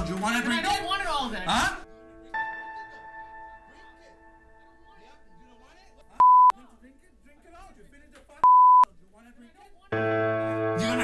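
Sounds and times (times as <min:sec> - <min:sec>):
censorship bleeps: 0:06.2 - 0:06.5, 0:08.4 - 0:08.9.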